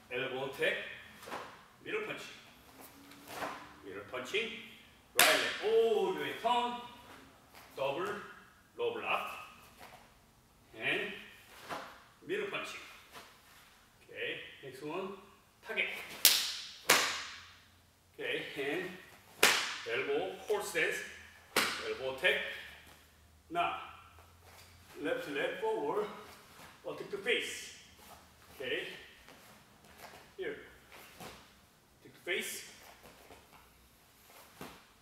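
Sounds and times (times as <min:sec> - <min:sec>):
man speaking: 0:00.0 - 0:01.1, 0:01.8 - 0:02.5, 0:03.8 - 0:07.2, 0:07.8 - 0:09.6, 0:10.7 - 0:11.4, 0:12.2 - 0:13.0, 0:14.0 - 0:16.2, 0:18.2 - 0:19.1, 0:19.8 - 0:22.8, 0:23.5 - 0:24.1, 0:24.9 - 0:27.9, 0:28.5 - 0:29.2, 0:30.3 - 0:30.8, 0:32.0 - 0:32.8
uniform sleeves snapping: 0:16.0 - 0:17.5, 0:19.3 - 0:19.9, 0:21.5 - 0:22.0.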